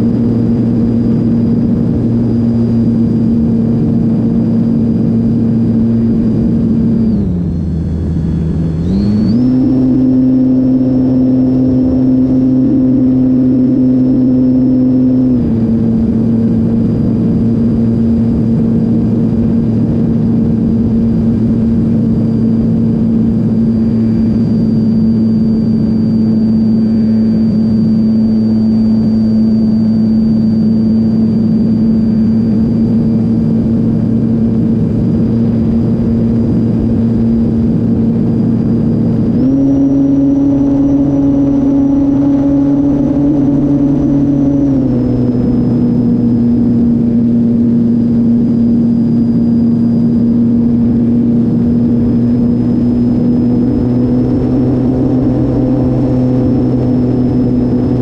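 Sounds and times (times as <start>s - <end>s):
model aeroplane motor droning: 0.0s - 58.0s.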